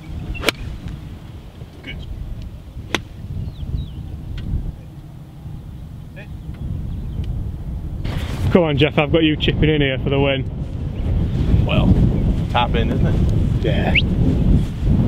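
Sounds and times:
golf cart low rumble: 0.0 - 14.0.

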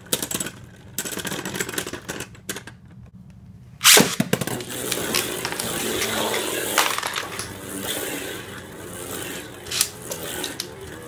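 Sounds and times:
spinning top whirring and scraping: 3.8 - 11.0.

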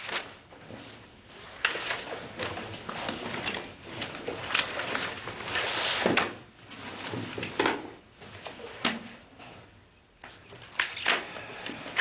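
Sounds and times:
rustling and handling noises: 0.0 - 12.0.

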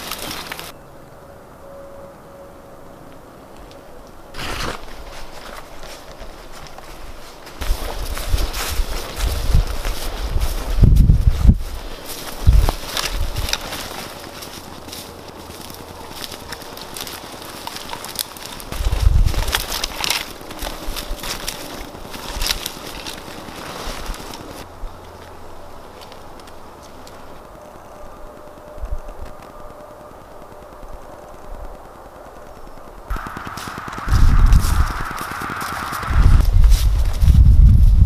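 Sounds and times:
boots crunching through dry leaves: 0.0 - 0.7, 4.3 - 27.4, 33.1 - 38.0
quiet outdoor background: 0.0 - 38.0
dull low thumps: 7.6 - 11.7, 33.1 - 35.2, 36.1 - 38.0.

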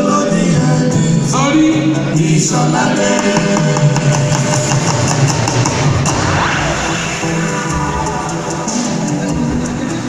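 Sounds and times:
men singing together: 0.0 - 4.7
band with guitars keyboard drums: 0.0 - 10.0.

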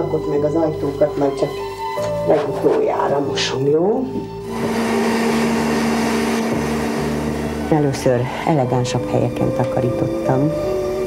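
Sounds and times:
vacuum cleaner on rug: 4.4 - 8.6.

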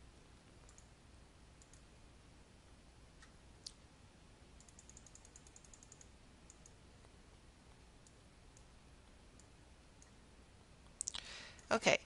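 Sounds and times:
computer mouse clicking: 0.6 - 0.9, 1.6 - 1.9, 4.6 - 6.8, 8.0 - 8.7, 9.4 - 10.2.

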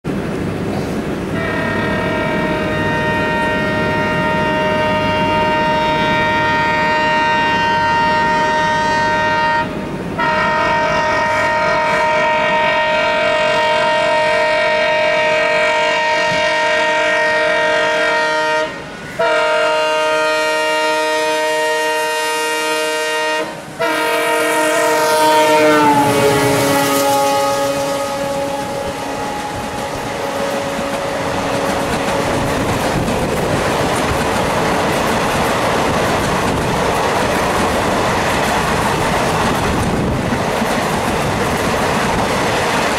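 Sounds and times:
train coaches rushing past: 0.0 - 42.9
locomotive multi-tone air horn: 1.3 - 33.0
wheels clacking over rail joints: 25.4 - 42.9.

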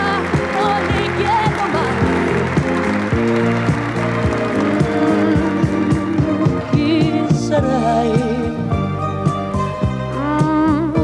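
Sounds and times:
pop song playing: 0.0 - 11.0.

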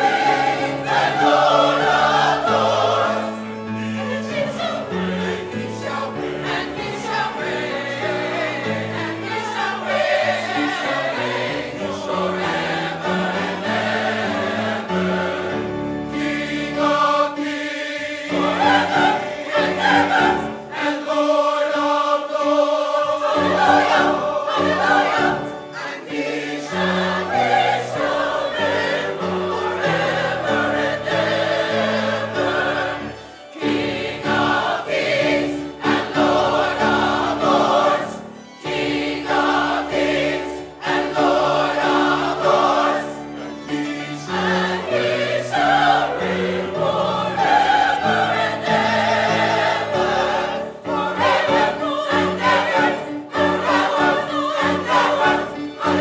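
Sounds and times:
choir singing sustained chords: 0.0 - 56.0.

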